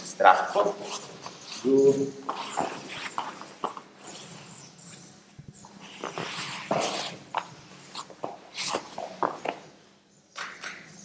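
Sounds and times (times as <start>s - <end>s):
grappling on a mat: 2.2s - 4.6s, 5.5s - 9.7s.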